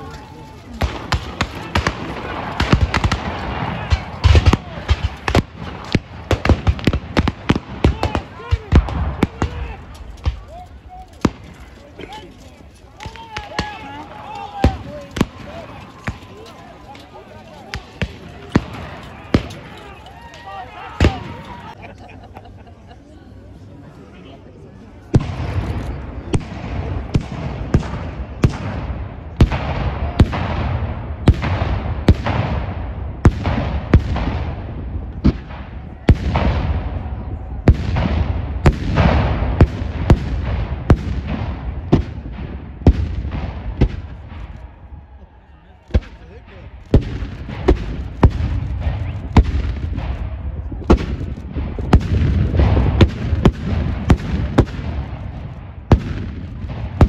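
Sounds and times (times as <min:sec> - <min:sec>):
musket shots echoing: 0:00.7 - 0:10.5, 0:13.0 - 0:19.9, 0:46.8 - 0:57.0.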